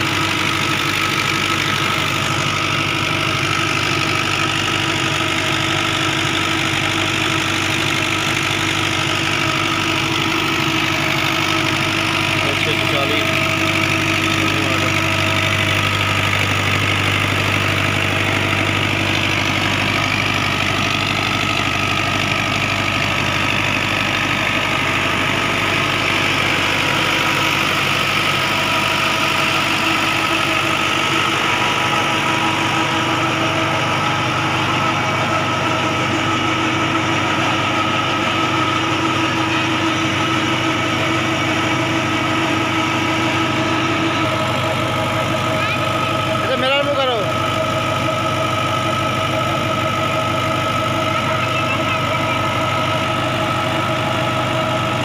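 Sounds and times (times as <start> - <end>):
tractor diesel engine idling: 0.0 - 55.0.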